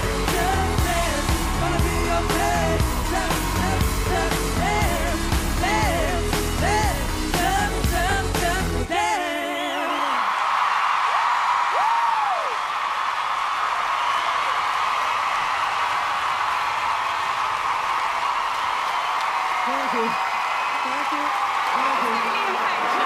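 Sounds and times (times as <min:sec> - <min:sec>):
audience cheering and clapping: 0:00.0 - 0:07.7, 0:09.0 - 0:23.0
person whooping: 0:11.7 - 0:12.7.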